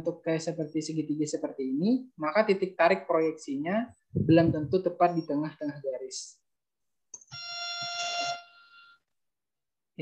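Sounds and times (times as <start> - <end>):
buzzy tone: 7.3 - 9.0.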